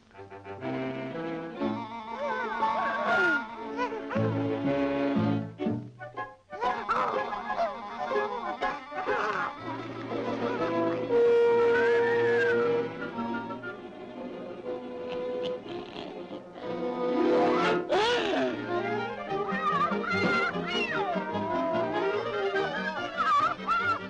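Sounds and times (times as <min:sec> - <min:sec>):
orchestral cartoon music: 0:00.2 - 0:24.0.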